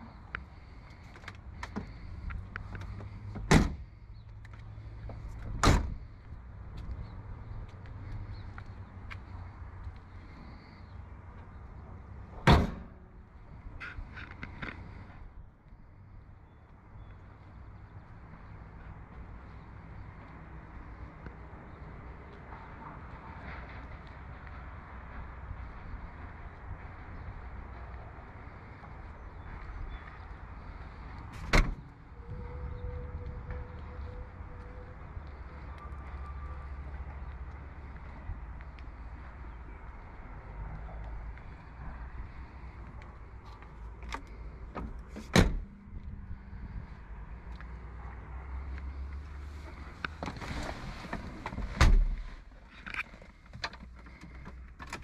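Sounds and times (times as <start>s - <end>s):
car doors shutting: 31.4s - 31.8s, 44.8s - 45.7s, 51.4s - 52.4s.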